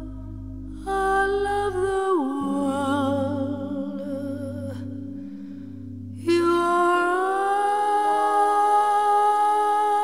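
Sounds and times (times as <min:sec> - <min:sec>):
woman singing long note: 0:00.0 - 0:05.0, 0:06.2 - 0:10.0.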